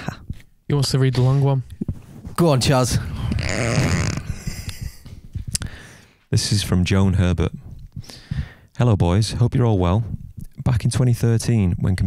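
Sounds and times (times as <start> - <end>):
man laughing breathily: 0.0 - 0.3, 4.0 - 6.0.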